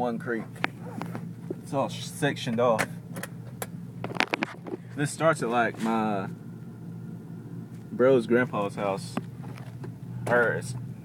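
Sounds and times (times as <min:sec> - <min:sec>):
truck engine hum from inside cab: 0:00.0 - 0:11.0.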